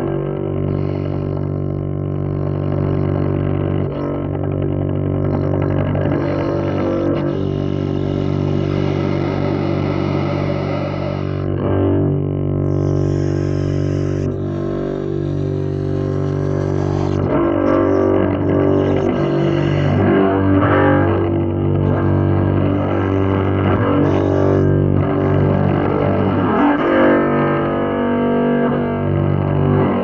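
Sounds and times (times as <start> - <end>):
double bass drone notes: 0.0 - 30.0.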